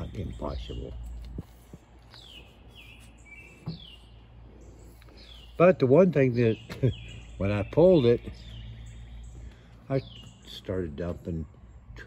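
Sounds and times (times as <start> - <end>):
songbird singing: 0.0 - 12.0.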